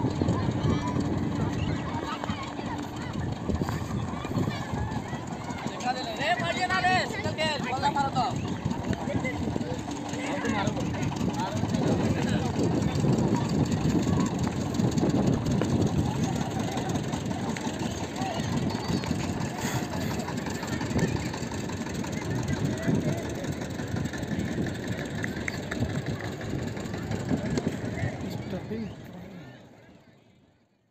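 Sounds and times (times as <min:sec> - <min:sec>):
wind and handling rumble: 0:00.0 - 0:29.2
people's voices: 0:00.0 - 0:30.7.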